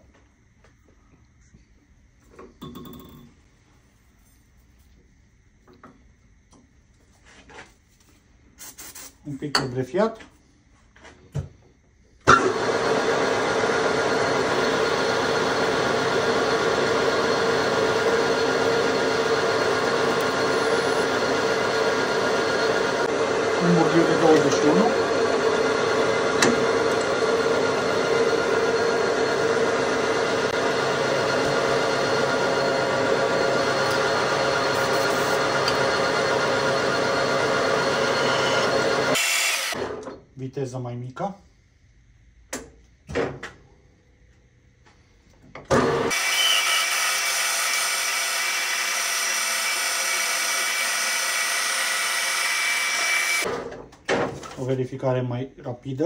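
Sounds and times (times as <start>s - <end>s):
metal lathe cutting metal: 12.3s - 39.9s, 45.7s - 53.5s.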